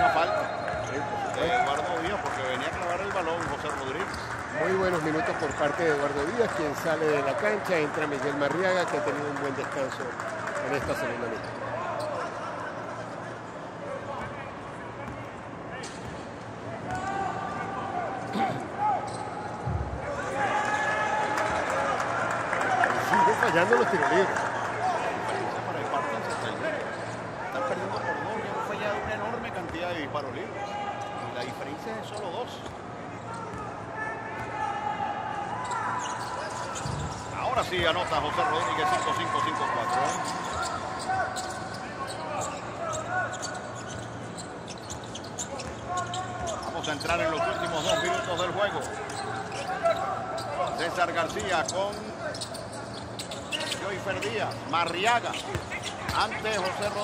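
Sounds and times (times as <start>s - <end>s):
sneaker squeaks: 0.1s - 1.3s, 15.0s - 17.2s, 18.2s - 20.3s, 30.6s - 33.8s, 35.6s - 57.0s.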